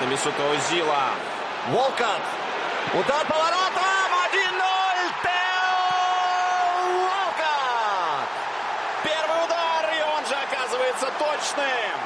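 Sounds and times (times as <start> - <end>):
stadium crowd cheering: 0.0 - 12.0
man commentating excitedly: 2.9 - 12.0.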